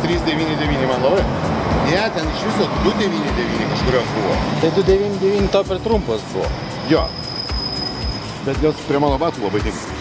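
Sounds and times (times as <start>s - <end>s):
people talking: 0.0s - 1.3s, 1.9s - 7.1s, 8.4s - 9.9s
road traffic passing: 0.0s - 10.0s.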